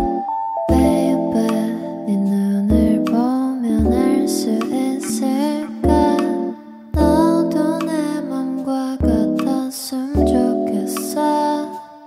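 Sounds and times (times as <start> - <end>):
lo-fi hip-hop music: 0.0 - 11.9.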